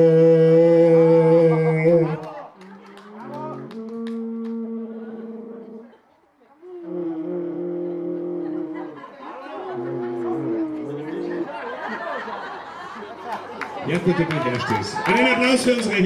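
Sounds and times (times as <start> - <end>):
alphorn long held notes: 0.0 - 6.0, 6.6 - 11.6.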